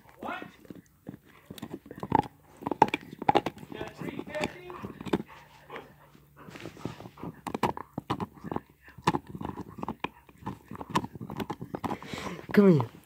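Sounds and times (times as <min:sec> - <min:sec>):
dog clicks and knocks: 0:00.6 - 0:05.3, 0:06.9 - 0:12.7
dog voice-like sounds: 0:03.7 - 0:06.0.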